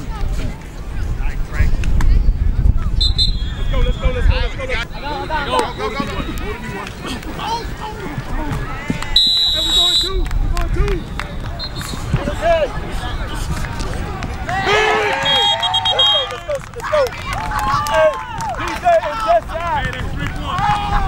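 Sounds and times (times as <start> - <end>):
shrill whistle blasts: 3.0 - 4.3, 9.2 - 10.2, 15.1 - 16.4
people shouting on a field: 3.0 - 21.0.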